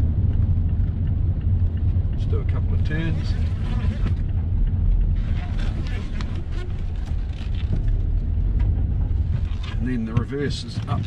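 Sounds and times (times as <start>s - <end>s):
car engine rumble: 0.0s - 11.0s
tyres on road: 0.0s - 11.0s.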